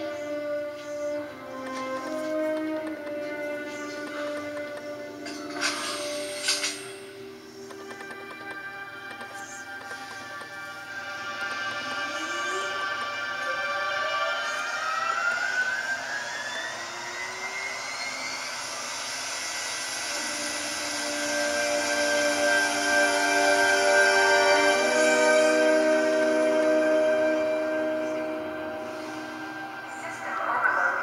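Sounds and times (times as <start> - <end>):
sustained chord tones: 0.0 - 31.0
rising pitch glide: 11.3 - 31.0.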